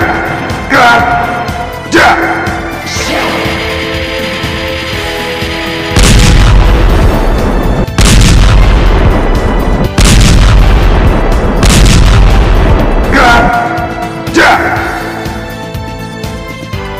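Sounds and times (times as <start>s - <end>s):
background music: 0.0s - 16.9s
distorted boom blast effect: 3.3s - 13.1s.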